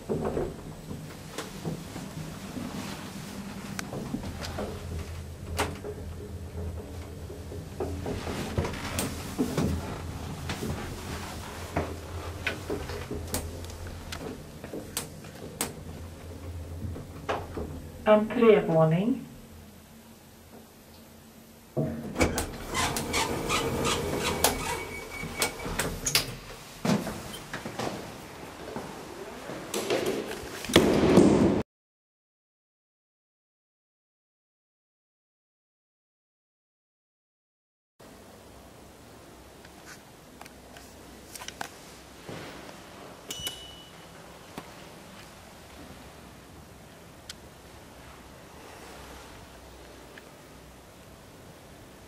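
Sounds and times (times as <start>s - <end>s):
elevator doors clattering: 0.0s - 18.5s, 21.9s - 28.2s
elevator button clicks: 43.3s - 44.0s
short high beep: 43.3s - 44.1s.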